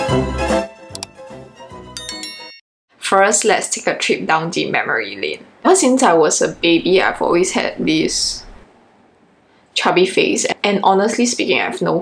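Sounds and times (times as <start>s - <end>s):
click: 0.9s - 1.1s
bright chime sound effect: 2.0s - 2.6s.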